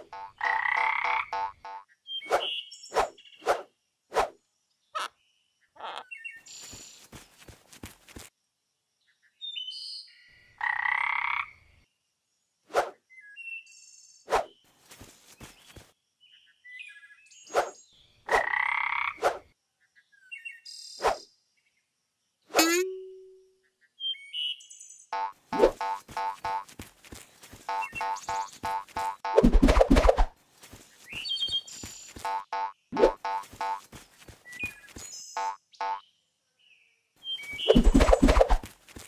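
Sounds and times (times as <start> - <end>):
cartoon frog croaking: 0.0 - 1.8, 5.8 - 6.1, 25.2 - 26.6, 32.3 - 33.8.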